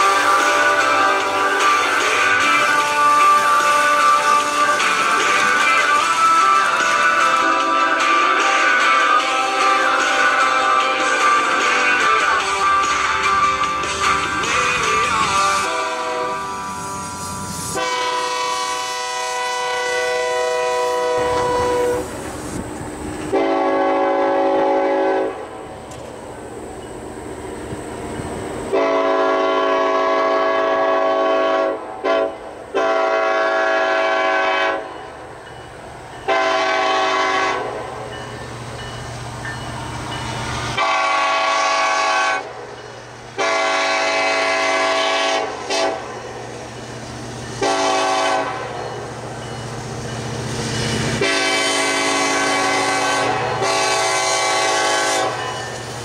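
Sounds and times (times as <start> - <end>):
locomotive air horn: 0.0 - 22.2, 23.3 - 25.7, 28.7 - 35.0, 36.3 - 38.1, 40.7 - 42.7, 43.4 - 46.2, 47.6 - 48.8, 51.2 - 55.6
low rumble of approaching train: 0.0 - 56.0.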